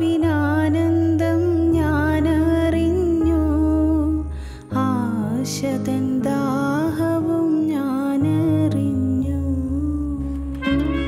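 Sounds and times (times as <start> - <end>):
plucked strings and bass: 8.2 - 11.0.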